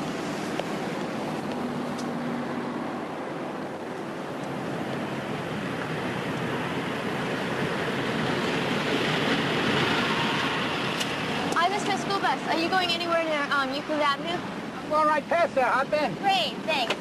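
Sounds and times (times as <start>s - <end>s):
car approaching: 0.0s - 17.0s
street traffic: 0.0s - 17.0s.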